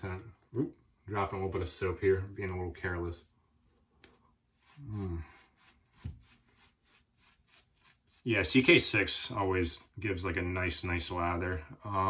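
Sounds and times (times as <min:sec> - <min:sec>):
shaving brush strokes on face: 0:04.0 - 0:11.2.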